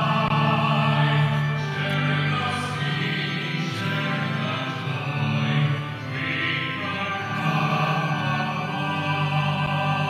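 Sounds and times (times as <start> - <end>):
hymn singing: 0.0 - 10.0
musical accompaniment: 0.0 - 10.0.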